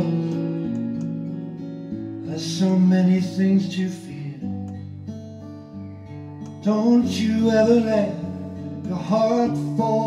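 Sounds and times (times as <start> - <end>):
person singing slow song: 0.0 - 1.1, 2.1 - 4.8, 6.5 - 10.0
acoustic guitar strummed: 0.0 - 10.0.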